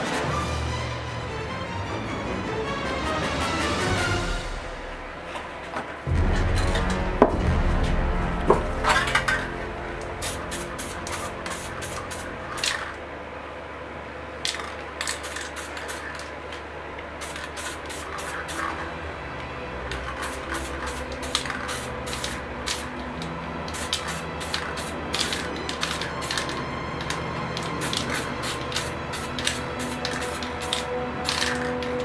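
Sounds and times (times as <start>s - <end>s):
background music: 0.0s - 13.9s, 17.2s - 32.0s
spray paint can hissing: 9.0s - 13.0s, 14.4s - 16.3s, 17.2s - 18.9s, 19.9s - 32.0s.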